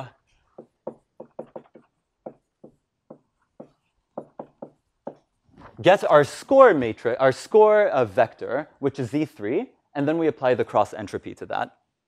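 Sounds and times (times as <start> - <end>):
marker writing on a whiteboard: 0.0 - 5.8.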